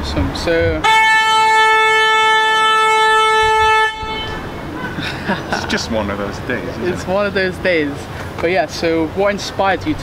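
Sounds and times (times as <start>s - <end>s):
long steady horn note: 0.8s - 5.0s.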